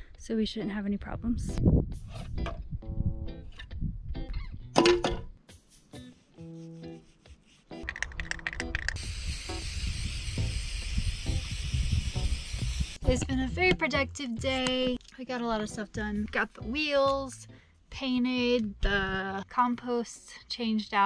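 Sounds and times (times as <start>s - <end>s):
background music: 0.0s - 21.0s
aerosol can spraying: 7.0s - 13.2s.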